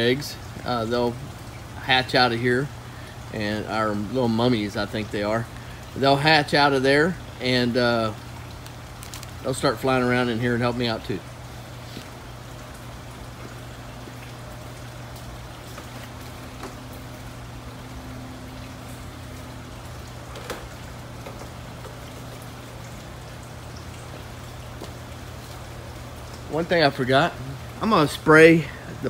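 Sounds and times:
water pattering: 0.0 - 29.0.

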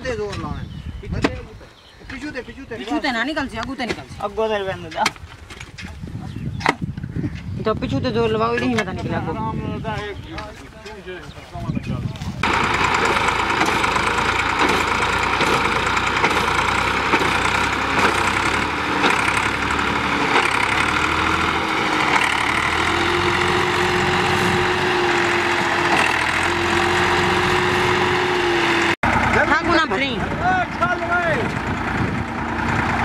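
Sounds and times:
voices: 0.0 - 6.7, 7.6 - 27.6, 29.2 - 33.0
tractor diesel engine under load: 12.3 - 33.0.

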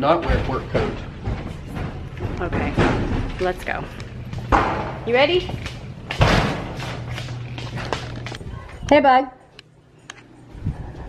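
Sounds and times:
footsteps: 0.2 - 8.9
bang on metal door: 4.5 - 5.0, 6.2 - 6.8.

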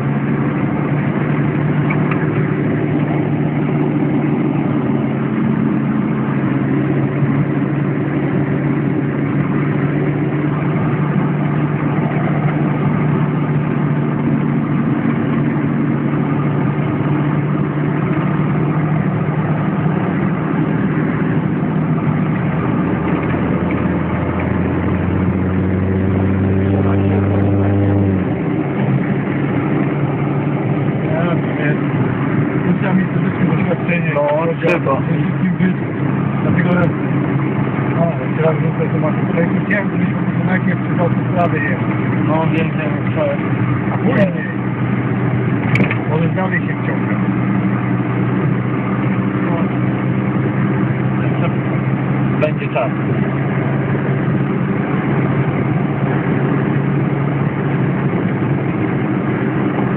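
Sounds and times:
low hum: 0.0 - 33.8
car engine running: 0.0 - 59.9.

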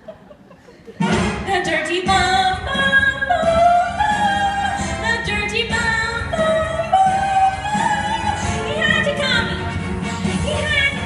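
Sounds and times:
recorded musical accompaniment: 0.9 - 11.0
woman singing into microphone: 1.5 - 9.6.

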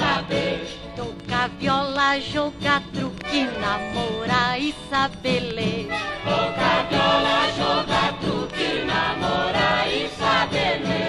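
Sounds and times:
vocal group singing in harmony: 0.0 - 1.8, 5.9 - 11.0
orchestral accompaniment: 5.8 - 11.0.

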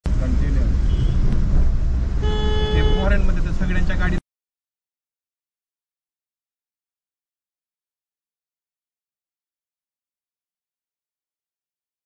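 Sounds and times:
car engine and road noise: 0.0 - 4.2.

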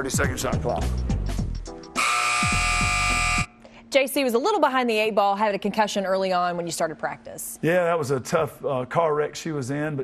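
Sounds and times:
shot-clock buzzer blaring: 2.0 - 3.6.

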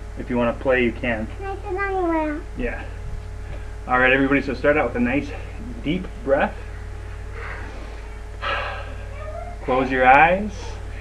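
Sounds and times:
breath out: 7.3 - 9.1.

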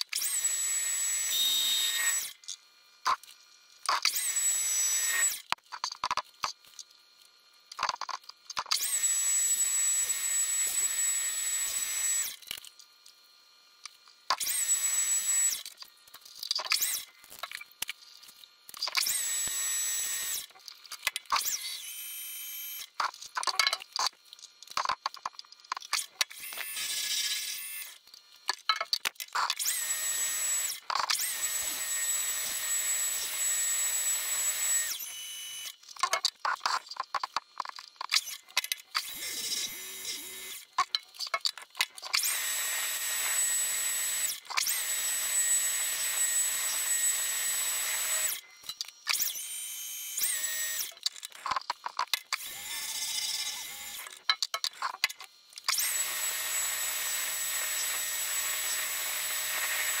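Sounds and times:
rapid clicks and rattles: 7.8 - 8.8.

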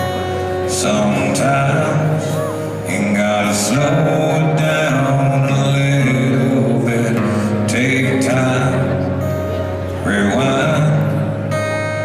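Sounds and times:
acoustic guitar: 0.0 - 12.0
man singing: 0.0 - 12.0.

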